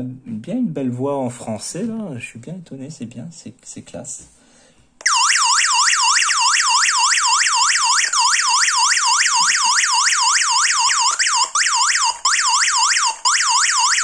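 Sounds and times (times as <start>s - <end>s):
alarm siren warbling: 5.0s - 14.0s.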